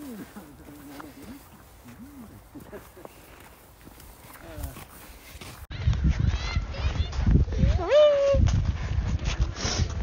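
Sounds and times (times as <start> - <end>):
footsteps in snow: 0.0 - 5.7.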